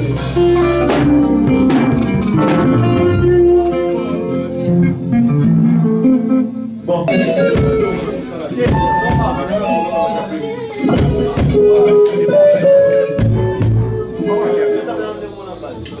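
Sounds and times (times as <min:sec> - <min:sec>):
drum kit: 0:00.0 - 0:04.2, 0:07.1 - 0:10.2, 0:10.8 - 0:14.6
electric bass: 0:00.0 - 0:08.2, 0:13.1 - 0:14.3
electric guitars: 0:00.0 - 0:16.0.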